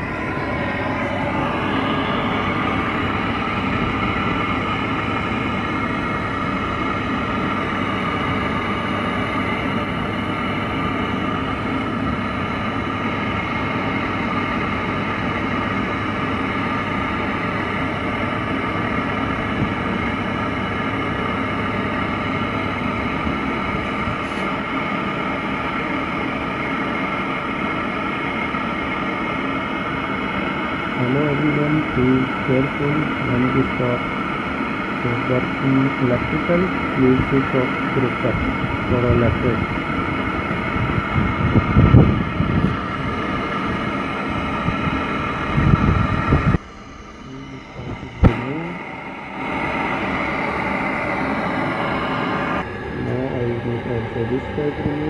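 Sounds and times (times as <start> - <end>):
gas torch hissing: 0.0 - 55.0.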